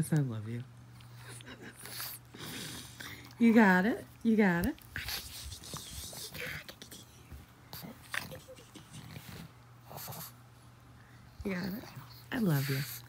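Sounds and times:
electric fan hum: 0:00.0 - 0:13.0.

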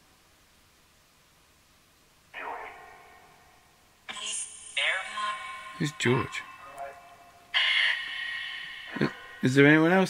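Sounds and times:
distorted scratchy burst from phone: 0:07.6 - 0:09.5.

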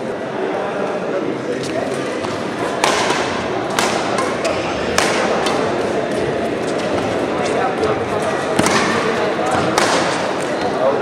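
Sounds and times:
racket hitting shuttlecock: 0:02.2 - 0:07.1, 0:08.5 - 0:10.7.

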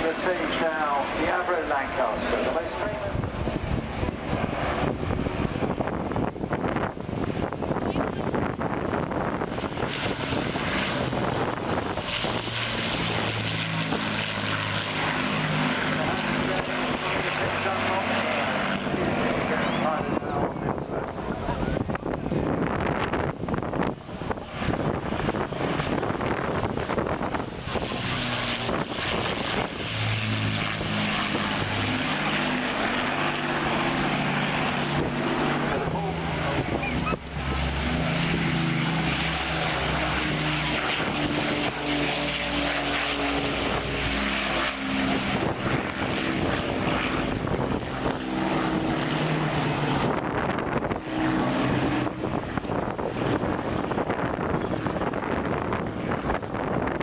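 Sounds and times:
propeller aircraft engines droning: 0:00.0 - 0:57.0
wind noise on microphone: 0:00.0 - 0:57.0.

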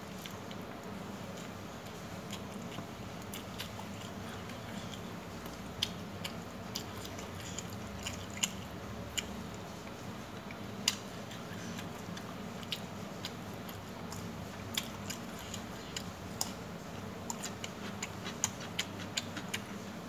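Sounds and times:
steady low hum: 0:00.0 - 0:20.0
chewing: 0:00.1 - 0:20.0.

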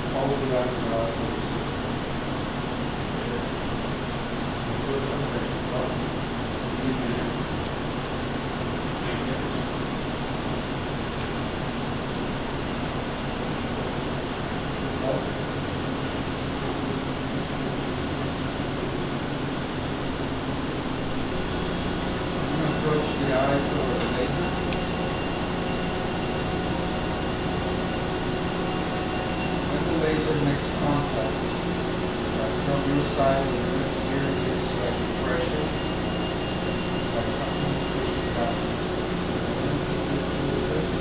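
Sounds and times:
medical equipment hum and hiss: 0:00.0 - 0:41.0.

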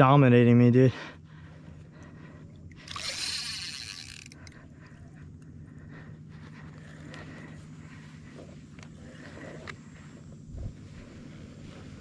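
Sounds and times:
fishing reel drag buzzing: 0:02.7 - 0:05.2.

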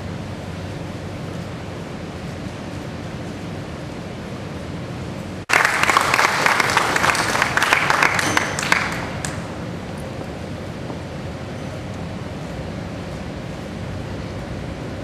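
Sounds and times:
low room hum: 0:00.0 - 0:15.0
audience applause: 0:05.5 - 0:09.5.

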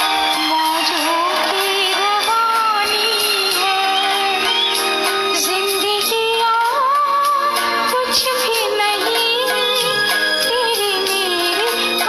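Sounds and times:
woman singing into a microphone: 0:00.0 - 0:04.6, 0:05.2 - 0:12.0.

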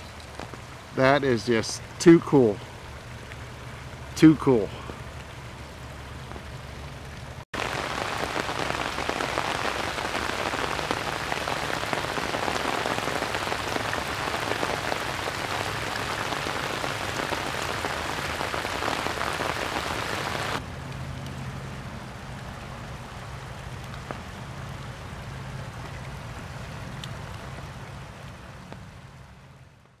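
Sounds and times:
water splashing over small waterfall: 0:00.0 - 0:30.0.

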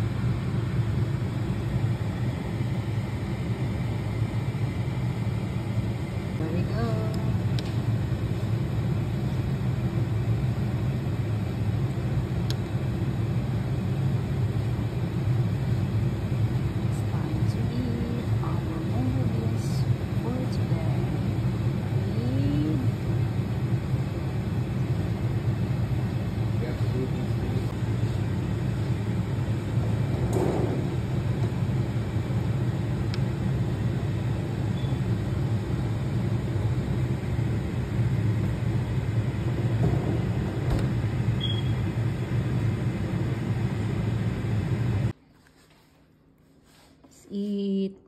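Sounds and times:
steady low rumble: 0:00.0 - 0:45.2.

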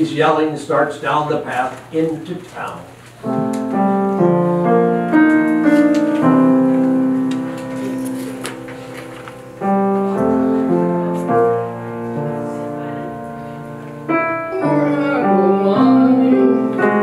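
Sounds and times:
piano playing slow chords: 0:03.2 - 0:17.0.

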